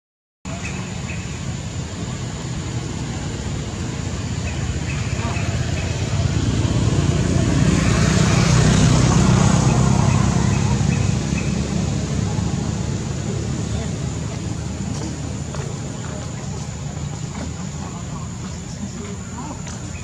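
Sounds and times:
motor vehicle low rumble: 0:00.5 - 0:20.0.

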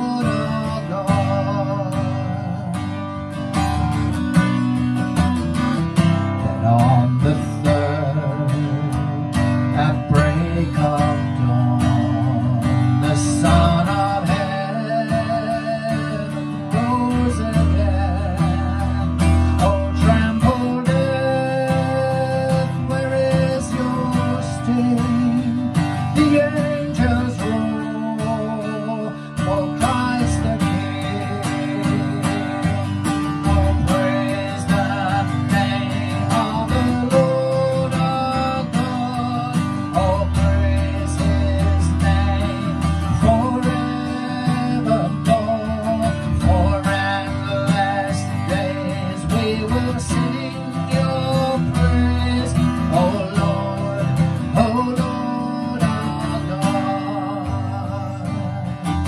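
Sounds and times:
acoustic guitar strumming: 0:00.0 - 0:59.0
man singing: 0:00.0 - 0:59.0.

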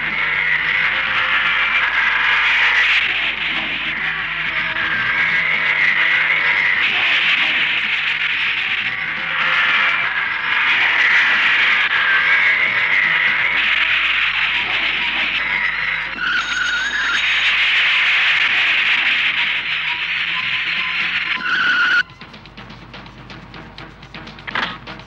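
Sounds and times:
film background music: 0:00.0 - 0:25.0
tyre screech: 0:04.8 - 0:22.0.

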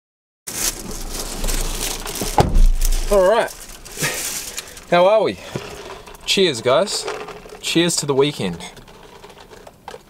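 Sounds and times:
shopping bag rustling: 0:00.5 - 0:09.6
handling noises in car: 0:00.5 - 0:10.0
heavy thump: 0:02.2 - 0:03.3.

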